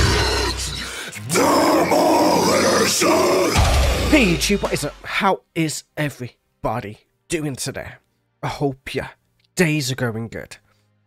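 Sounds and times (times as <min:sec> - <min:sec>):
growled vocal: 0:00.0 - 0:04.1
heavy metal music: 0:00.0 - 0:05.2.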